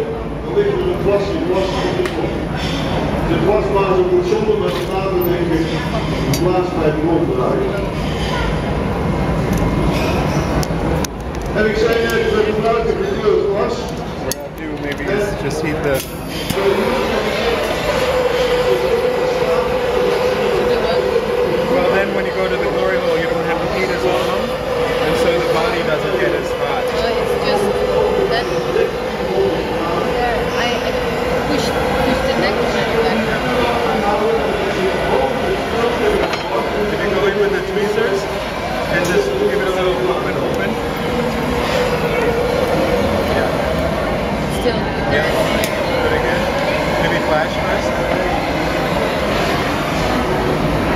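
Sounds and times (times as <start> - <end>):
murmur of voices: 0.0 - 50.9.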